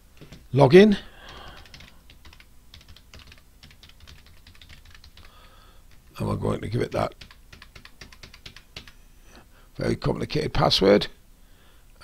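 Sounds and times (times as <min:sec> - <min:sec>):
keyboard typing: 0:01.2 - 0:06.1, 0:07.1 - 0:09.0.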